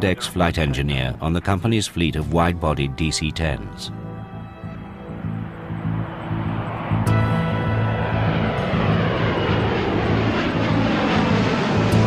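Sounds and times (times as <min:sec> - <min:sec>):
low sustained music tones: 0:00.0 - 0:12.0
jet engine rushing: 0:04.1 - 0:12.0.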